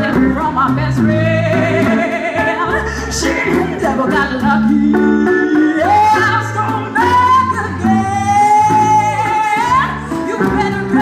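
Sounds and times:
blues band playing: 0.0 - 11.0
guitars playing: 0.0 - 11.0.

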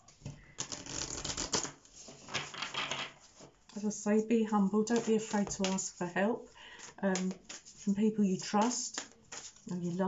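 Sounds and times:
cards being shuffled: 0.6 - 3.5, 6.8 - 7.9, 8.6 - 9.7.

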